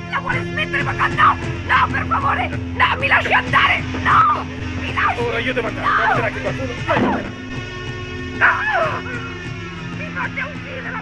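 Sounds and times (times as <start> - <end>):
dramatic film score music: 0.0 - 11.0.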